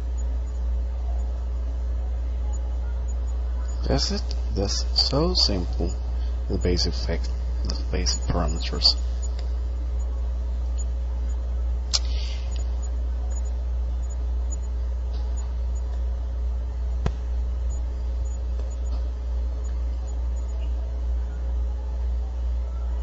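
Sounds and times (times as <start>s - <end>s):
low room hum: 0.0s - 23.0s.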